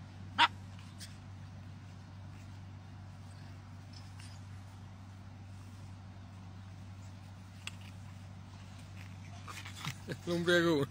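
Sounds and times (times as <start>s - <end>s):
steady low hum: 0.0s - 10.9s.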